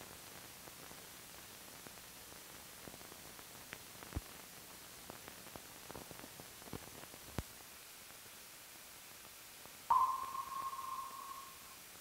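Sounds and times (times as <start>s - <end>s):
faint steady hiss: 0.0s - 12.0s
struck ringing tone: 9.9s - 11.7s.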